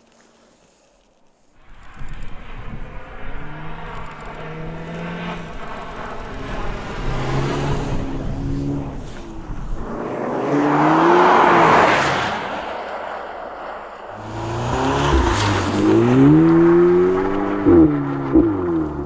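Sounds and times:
tyres hissing on snow: 0:00.0 - 0:01.9
car engine revving: 0:01.8 - 0:12.9, 0:14.1 - 0:19.0.

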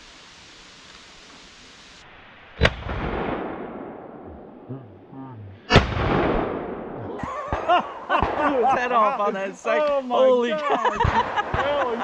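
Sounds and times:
shotgun shots with echo: 0:05.7 - 0:07.0.

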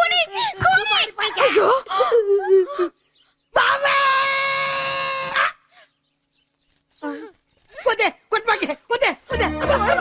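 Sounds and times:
animal cry on steady pitch: 0:03.5 - 0:05.8.

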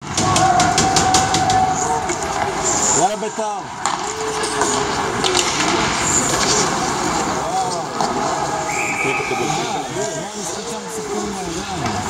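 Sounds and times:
voices calling out: 0:00.0 - 0:12.0
hockey stick clacks: 0:00.1 - 0:02.6, 0:03.8 - 0:08.4
skates rushing on ice: 0:00.2 - 0:12.0.

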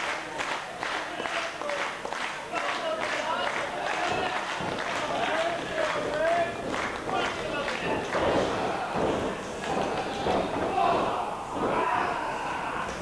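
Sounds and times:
spectators shouting: 0:03.2 - 0:13.0.

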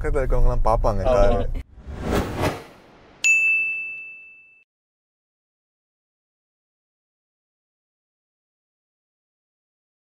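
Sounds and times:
bright high ding: 0:03.2 - 0:04.7.

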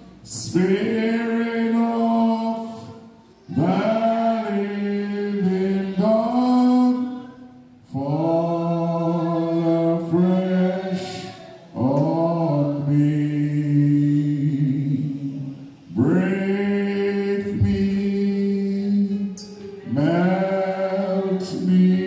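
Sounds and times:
man singing unaccompanied: 0:00.0 - 0:22.0.

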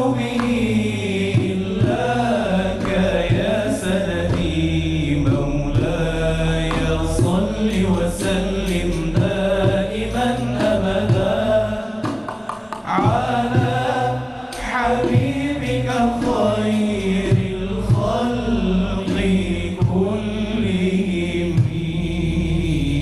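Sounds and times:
male chorus humming: 0:00.0 - 0:23.0
man singing devotional chant: 0:00.0 - 0:23.0.

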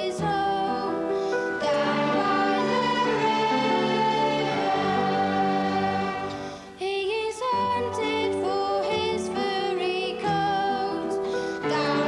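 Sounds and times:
children's choir singing: 0:00.0 - 0:12.0.

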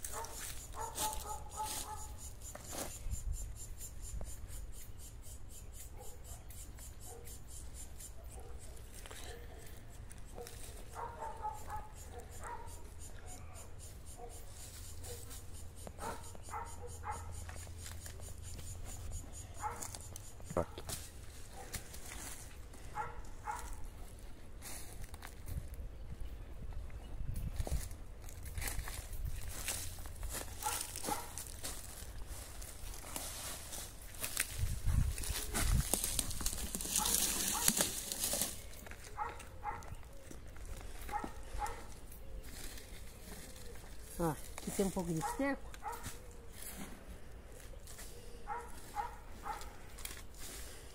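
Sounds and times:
hands rustling in soil: 0:00.0 - 0:03.4, 0:07.8 - 0:12.6, 0:14.4 - 0:50.9
wind rumble on microphone: 0:25.3 - 0:29.6, 0:34.4 - 0:36.5.

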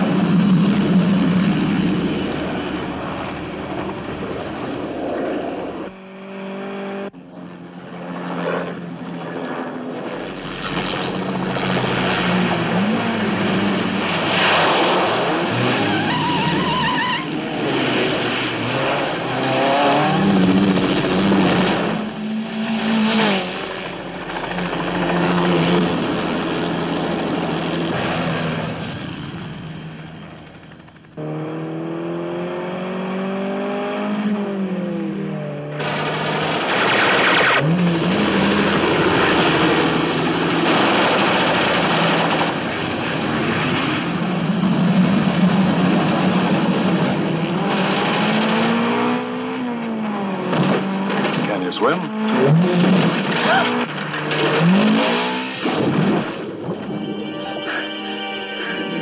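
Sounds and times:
helicopter: 0:00.0 - 0:06.4, 0:07.0 - 0:16.1, 0:17.2 - 0:31.2, 0:35.7 - 0:49.4
road noise: 0:00.0 - 0:59.0.

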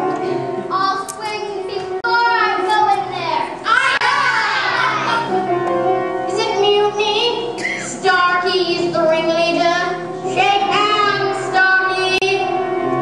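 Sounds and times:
instrumental accompaniment: 0:00.0 - 0:13.0
children singing: 0:03.6 - 0:05.4.

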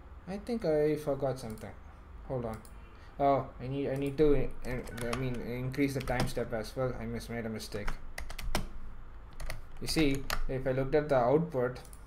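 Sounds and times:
computer keyboard typing: 0:01.4 - 0:01.8, 0:03.9 - 0:06.4, 0:07.8 - 0:08.7, 0:09.3 - 0:10.5, 0:11.8 - 0:12.0.

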